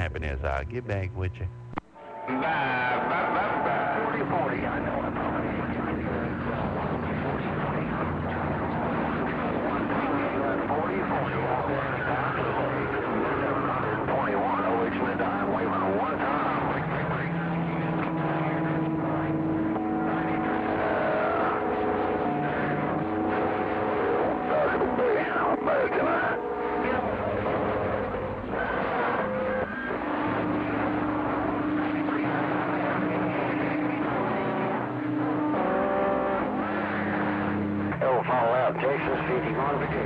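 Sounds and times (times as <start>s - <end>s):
heterodyne tones: 0.0s - 40.0s
higher steady tones: 0.0s - 40.0s
radio band noise: 0.0s - 40.0s.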